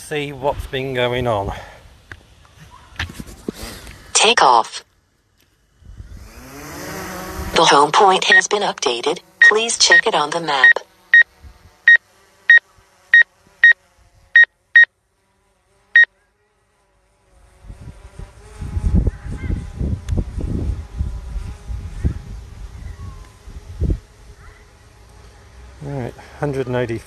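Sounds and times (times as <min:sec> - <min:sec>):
wind rumbling on microphone: 0:05.8 - 0:06.4, 0:17.6 - 0:24.6
faint steady hum: 0:07.3 - 0:13.8
short electronic beeps: 0:08.2 - 0:08.6, 0:09.4 - 0:10.8.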